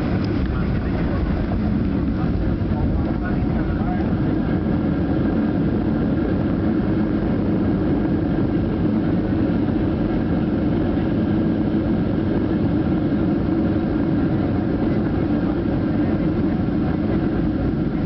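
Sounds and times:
jet engines roaring: 0.0 - 18.0.

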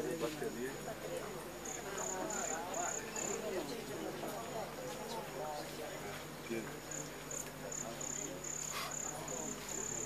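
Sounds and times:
cricket trilling: 1.6 - 3.6, 6.9 - 10.0.

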